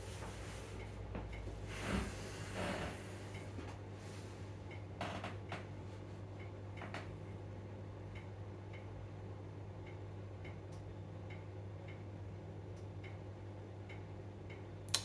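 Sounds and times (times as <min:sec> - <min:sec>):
soft ticks: 0:00.3 - 0:01.5, 0:04.7 - 0:07.3, 0:08.0 - 0:08.9, 0:09.5 - 0:15.0.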